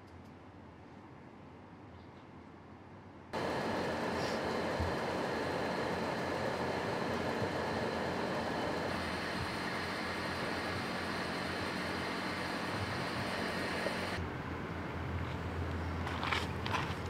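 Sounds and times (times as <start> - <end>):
ventilation fans whirring: 3.2 - 17.0
low hum: 3.4 - 16.0.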